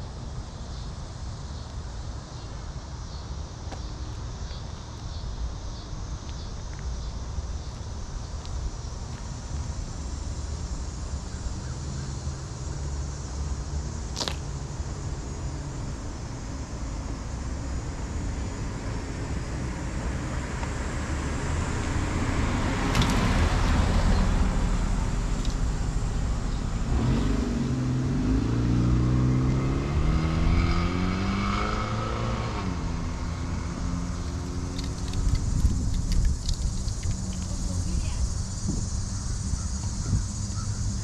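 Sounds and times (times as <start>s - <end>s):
road traffic rumble: 0.0s - 41.0s
car engine speeding up: 20.8s - 36.0s.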